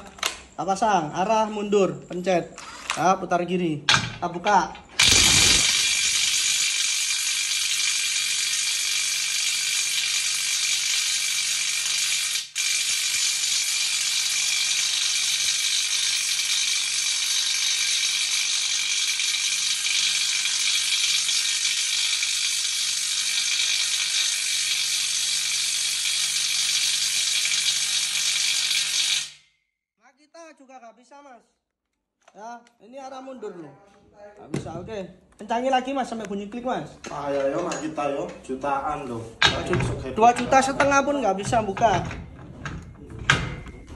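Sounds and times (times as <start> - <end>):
impact wrench hammering: 4.9 - 29.4, 39.4 - 42.4.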